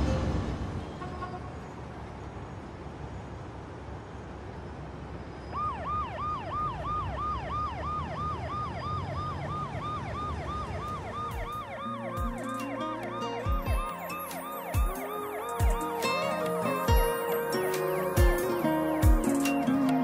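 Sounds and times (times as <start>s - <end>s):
low street hum: 0.0s - 20.0s
ambulance siren yelping: 5.5s - 20.0s
slow music with deep bass: 11.3s - 20.0s.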